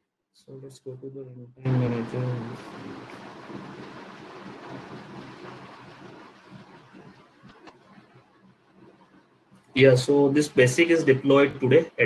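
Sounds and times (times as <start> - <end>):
microphone background hiss: 0.5 - 8.2, 9.7 - 12.0.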